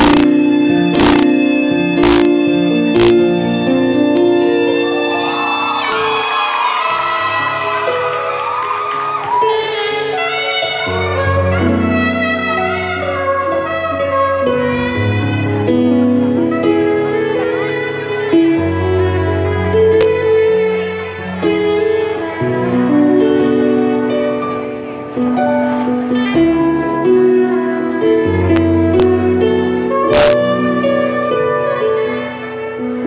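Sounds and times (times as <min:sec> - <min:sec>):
sustained accompaniment: 0:00.0 - 0:05.6
bass and chord accompaniment: 0:00.0 - 0:06.0, 0:10.8 - 0:33.0
soprano saxophone ballad melody: 0:00.0 - 0:33.0.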